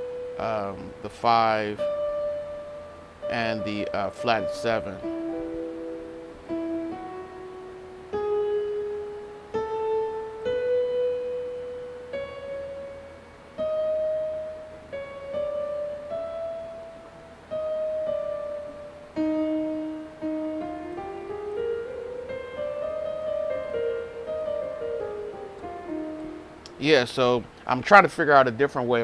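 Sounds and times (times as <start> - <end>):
digital piano notes and chords: 0.0 - 29.0.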